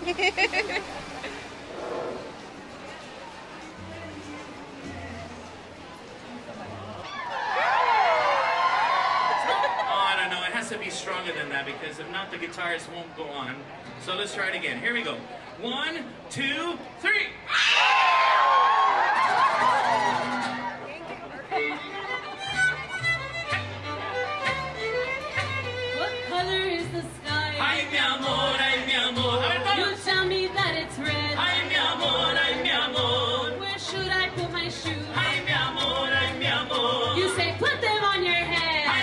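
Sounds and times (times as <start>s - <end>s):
crowd cheering and whooping: 7.0s - 10.2s, 17.5s - 20.8s
live band playing: 19.4s - 39.0s
person singing: 26.3s - 39.0s.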